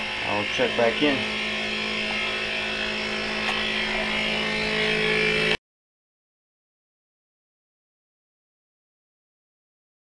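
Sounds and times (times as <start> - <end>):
milling machine whine: 0.0 - 5.6.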